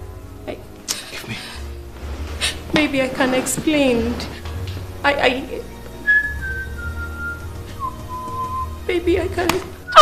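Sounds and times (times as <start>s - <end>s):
whistle-like melody: 6.0s - 8.9s.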